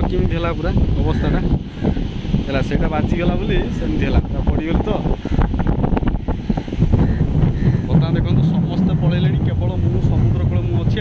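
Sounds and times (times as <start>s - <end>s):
sea surf washing: 0.0s - 11.0s
wind buffeting microphone: 0.0s - 11.0s.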